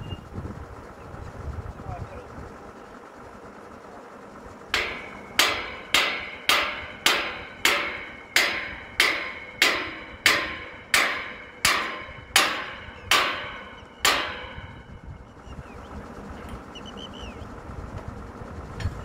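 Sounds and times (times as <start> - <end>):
hammer blows on metal: 4.8 - 15.0.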